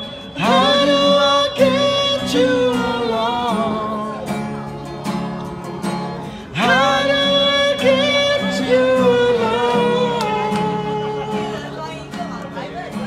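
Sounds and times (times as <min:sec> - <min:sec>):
instrumental accompaniment with guitar: 0:00.0 - 0:13.0.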